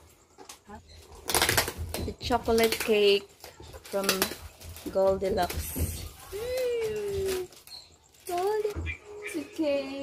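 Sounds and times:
plastic wrapping crinkling: 1.2s - 9.5s.

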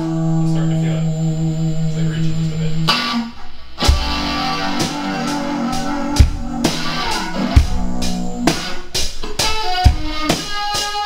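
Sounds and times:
electric guitar sustained notes: 0.0s - 11.0s
drum hits: 2.9s - 10.8s.

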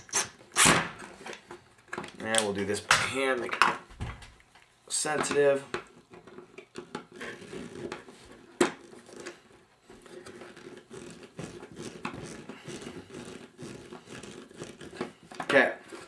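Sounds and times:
screw scratching and handling: 6.3s - 15.3s.

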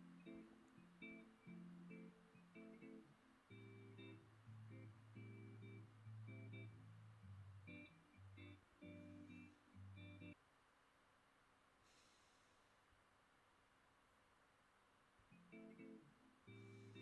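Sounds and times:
guitar notes and chords: 0.0s - 10.4s, 15.3s - 17.0s.

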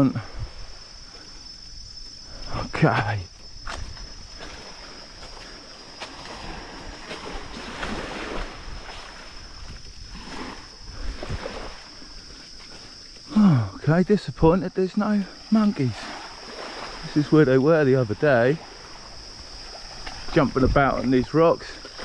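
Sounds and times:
insects droning: 0.0s - 22.0s.

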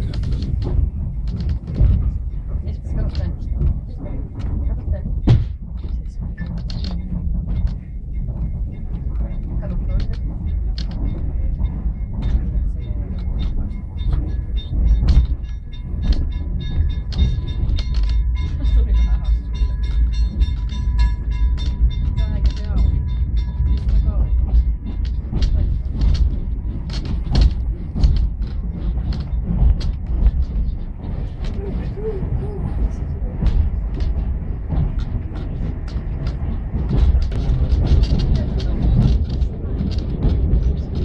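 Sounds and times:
moving train rumble: 0.0s - 41.0s
wheels knocking and rattling: 0.0s - 41.0s.

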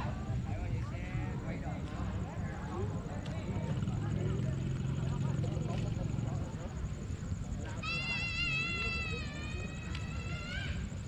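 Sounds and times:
faint voices: 0.0s - 11.0s
motorbike engine hum: 0.0s - 11.0s.

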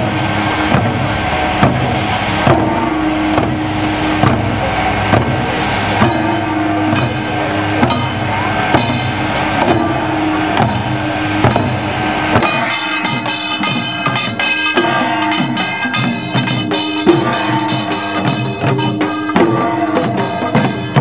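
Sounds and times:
low rumble: 0.0s - 13.4s
barrel drums beating: 0.0s - 21.0s
brass gongs ringing: 0.0s - 21.0s.

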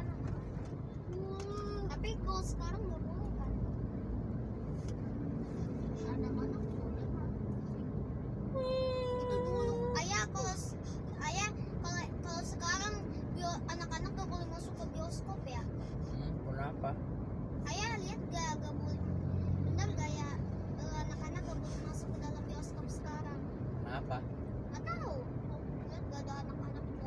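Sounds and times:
engine and road rumble: 0.0s - 27.0s
people talking: 1.1s - 3.6s, 8.6s - 15.6s.

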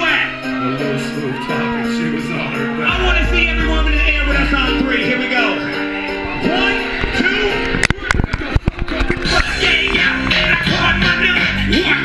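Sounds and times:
man rapping: 0.0s - 5.8s, 6.4s - 12.0s
live hip-hop music over pa: 0.0s - 12.0s.

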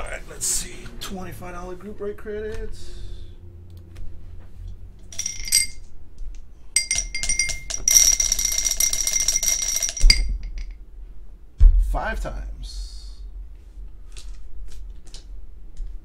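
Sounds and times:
dice rattling in a glass: 5.1s - 5.9s, 6.8s - 10.6s
glass thumping on padded mat: 9.9s - 10.8s.

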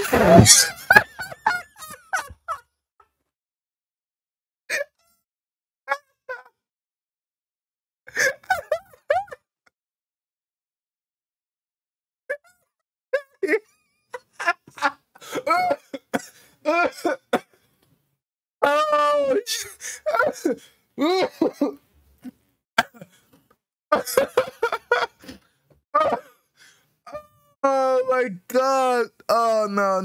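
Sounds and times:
man laughing: 0.0s - 2.6s, 8.1s - 9.4s, 13.2s - 17.3s, 18.6s - 21.8s, 23.9s - 25.4s, 26.0s - 26.4s.

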